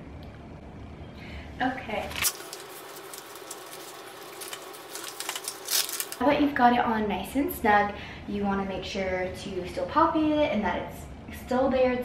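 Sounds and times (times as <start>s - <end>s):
cuff fabric rustling: 2.0s - 6.2s.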